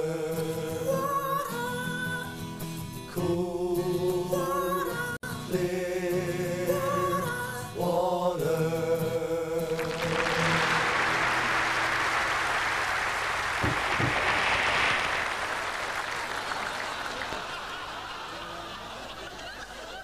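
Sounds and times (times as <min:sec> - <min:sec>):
vocal group harmony: 0:00.0 - 0:11.1
audience applauding: 0:09.7 - 0:20.0.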